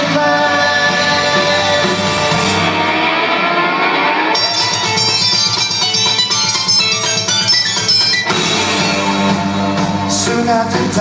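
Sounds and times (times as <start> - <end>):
electric guitar: 0.0 - 11.0
live rock band: 0.0 - 11.0.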